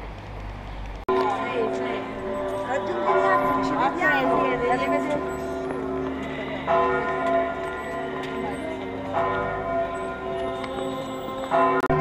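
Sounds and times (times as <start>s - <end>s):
church bells ringing: 1.1s - 12.0s.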